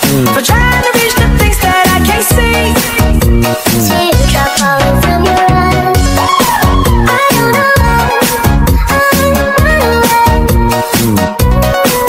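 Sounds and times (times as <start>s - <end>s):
kick drum beat: 6.0s - 11.6s.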